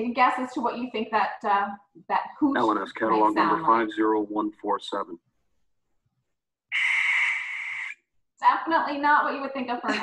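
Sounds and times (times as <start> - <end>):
barn owl screech: 6.7 - 8.0.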